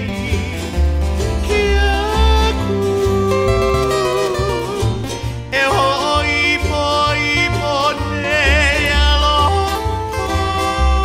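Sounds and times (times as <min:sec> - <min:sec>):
guitars playing: 0:00.0 - 0:11.0
person singing: 0:00.0 - 0:11.0
steady low bass line: 0:00.0 - 0:11.0.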